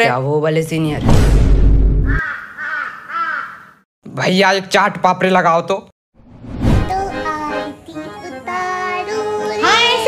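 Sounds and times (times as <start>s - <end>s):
crow cawing: 2.1s - 3.8s.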